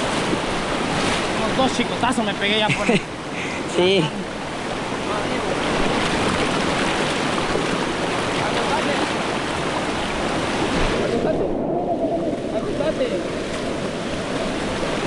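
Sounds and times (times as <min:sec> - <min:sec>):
river rapids rushing: 0:00.0 - 0:15.0.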